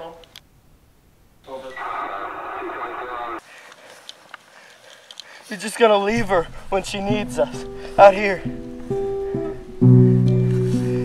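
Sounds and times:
voice through radio speaker: 0:01.5 - 0:03.4.

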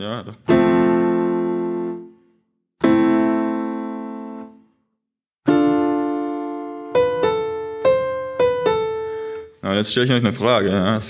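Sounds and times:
piano notes ringing: 0:00.5 - 0:02.2, 0:02.8 - 0:04.6, 0:05.5 - 0:09.6.

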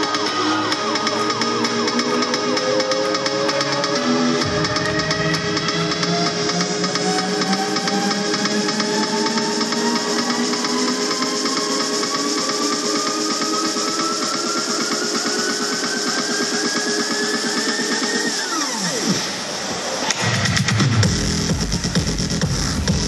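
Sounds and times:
fast repeating beat: 0:00.0 - 0:18.7, 0:20.2 - 0:23.0
electronic dance music: 0:00.0 - 0:23.0
heavy bass: 0:20.2 - 0:23.0.

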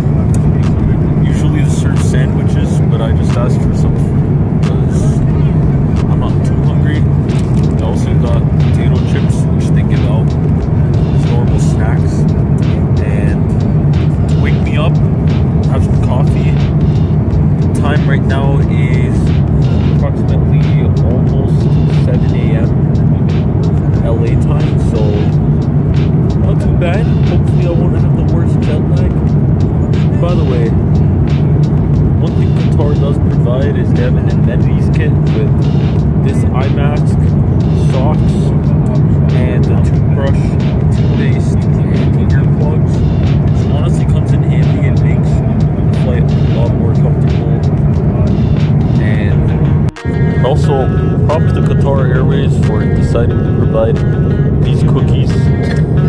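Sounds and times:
man talking: 0:00.0 - 0:15.0, 0:15.6 - 0:16.7, 0:17.6 - 0:22.8, 0:23.8 - 0:25.4, 0:26.4 - 0:29.3, 0:30.0 - 0:30.8, 0:32.2 - 0:35.6, 0:36.2 - 0:49.6, 0:50.4 - 0:56.0
airliner cabin rumble: 0:00.0 - 0:56.0.

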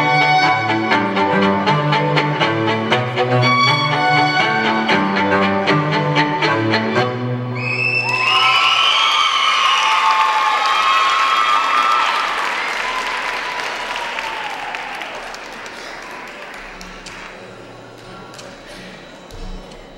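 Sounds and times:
high whoops: 0:07.6 - 0:15.4
audience applauding and cheering: 0:07.6 - 0:19.4.

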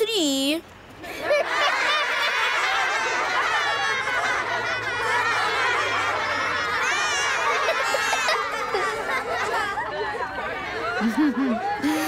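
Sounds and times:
children laughing: 0:01.0 - 0:12.0.

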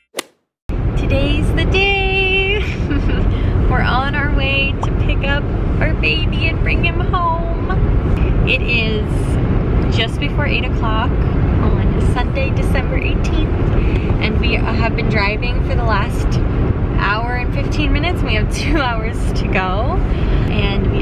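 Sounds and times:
car road and engine rumble: 0:00.7 - 0:21.0
woman talking: 0:01.0 - 0:16.4, 0:17.0 - 0:21.0.

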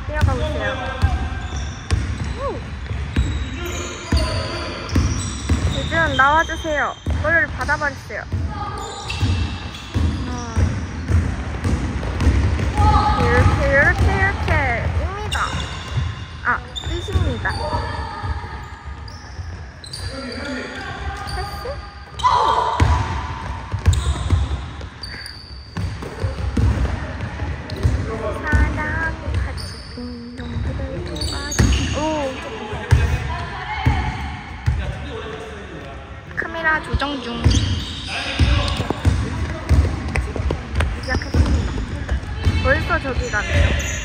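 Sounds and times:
sneakers squeaking: 0:00.0 - 0:44.0
basketball dribbling on hardwood: 0:38.4 - 0:43.0.

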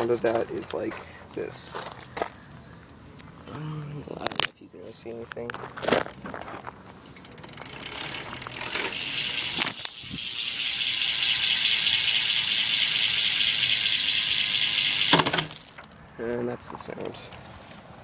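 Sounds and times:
bicycle hub freewheeling buzz: 0:07.0 - 0:15.9.

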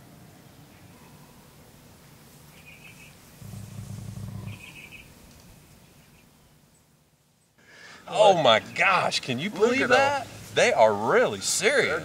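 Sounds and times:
hog high calls: 0:02.6 - 0:05.1
hog growling: 0:03.4 - 0:05.0.

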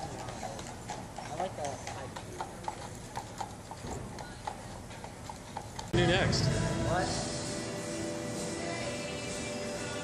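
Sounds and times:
horse hooves clip-clopping on pavement: 0:00.0 - 0:06.0.

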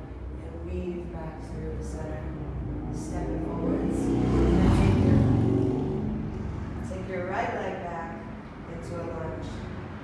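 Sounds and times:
low humming rumble: 0:00.0 - 0:10.0.

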